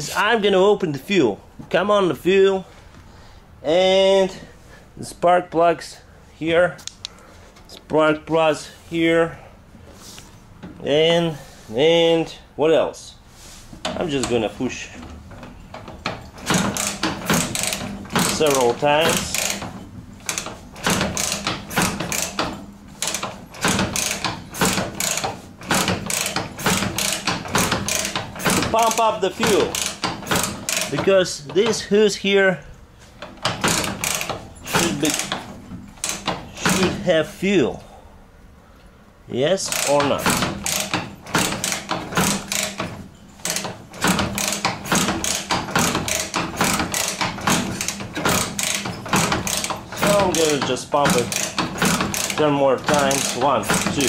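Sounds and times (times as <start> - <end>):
motorcycle kickstarter clatter: 13.8 - 32.0, 33.2 - 37.1, 39.6 - 54.0
rapid mechanical clicking: 13.8 - 32.1, 33.2 - 37.2, 39.6 - 54.0.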